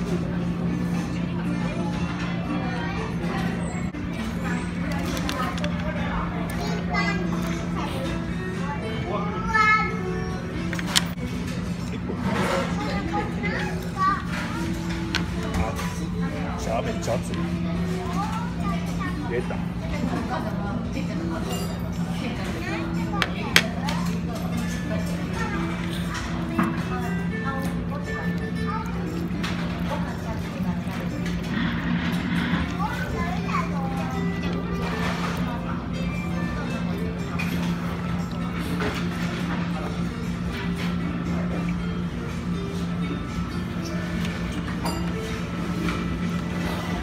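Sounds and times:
indistinct chatter: 0:00.0 - 0:47.0
people talking: 0:15.2 - 0:37.2.

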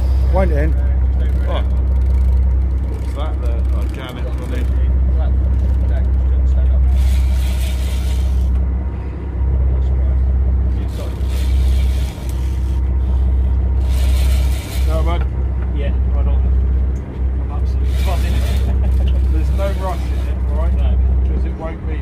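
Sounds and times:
boat rumbling at sea: 0:00.0 - 0:22.0.

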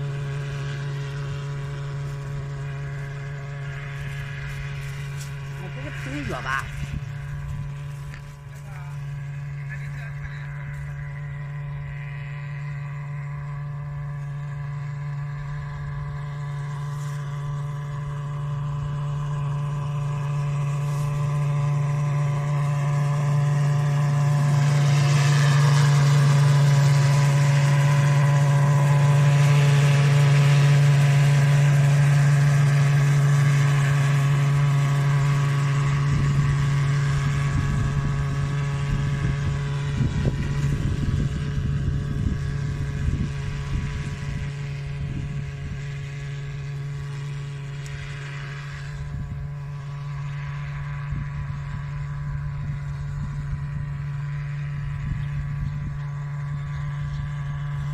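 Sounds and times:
drone droning hum: 0:00.0 - 0:57.9
wind rumble on microphone: 0:00.0 - 0:57.9.

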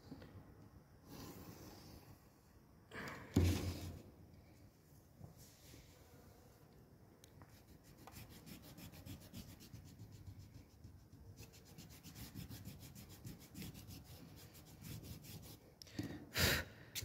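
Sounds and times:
eraser rubbing on paper: 0:07.5 - 0:15.6.

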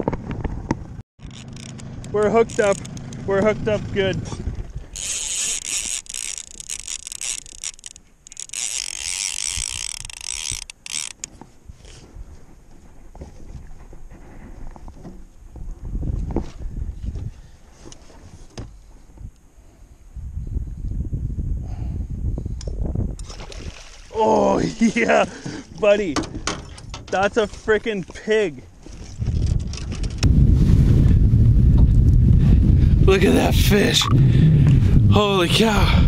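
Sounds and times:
low rumbling: 0:00.0 - 0:06.9, 0:29.0 - 0:36.0
fishing reel ratcheting: 0:01.2 - 0:03.2, 0:05.0 - 0:12.0.

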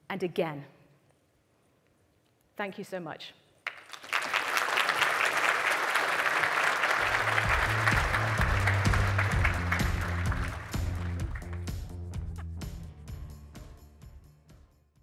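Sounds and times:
audience applauding: 0:03.6 - 0:12.0
music with bass line: 0:07.1 - 0:14.3.

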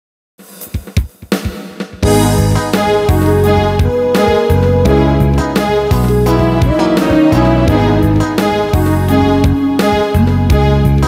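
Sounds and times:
drum kit fill: 0:00.4 - 0:10.7
band playing: 0:02.0 - 0:10.7.

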